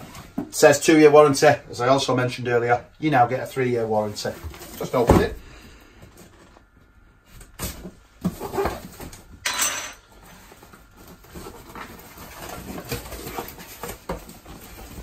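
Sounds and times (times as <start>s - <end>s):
cardboard box scraping and rustling: 7.6s - 9.2s, 10.2s - 15.0s.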